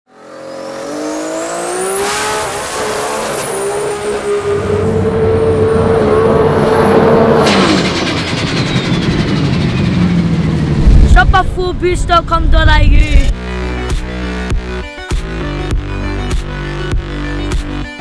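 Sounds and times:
car engine accelerating hard: 0:00.1 - 0:11.2
high turbo whistle: 0:00.6 - 0:11.0
rough low engine rumble: 0:07.7 - 0:14.8.

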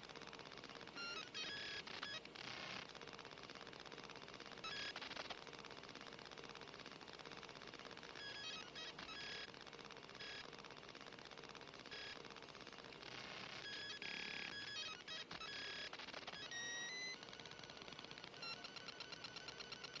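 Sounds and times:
electronic clicking and ticking: 0:00.0 - 0:20.0.

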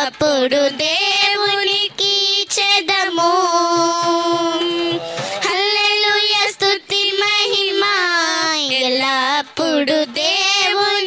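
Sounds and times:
girls singing into microphones: 0:00.0 - 0:11.0.

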